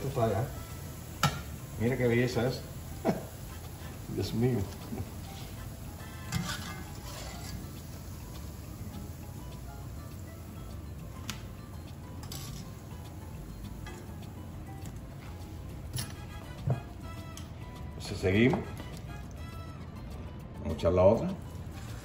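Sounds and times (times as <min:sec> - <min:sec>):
food sizzling in hot oil: 0:00.0 - 0:19.5, 0:21.3 - 0:22.0
quiet background music: 0:00.0 - 0:22.0.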